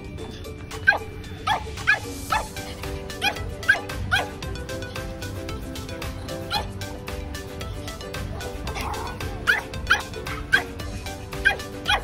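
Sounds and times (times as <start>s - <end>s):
small dog yapping: 3.2s - 4.3s, 8.4s - 10.7s.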